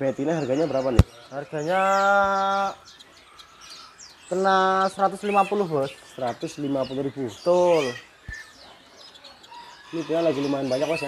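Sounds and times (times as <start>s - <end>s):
caged songbirds chirping: 0.0s - 11.0s.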